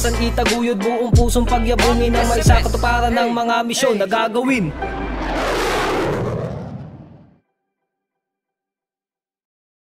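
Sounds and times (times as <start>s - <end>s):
cinematic whoosh with low rumble: 4.5s - 7.4s.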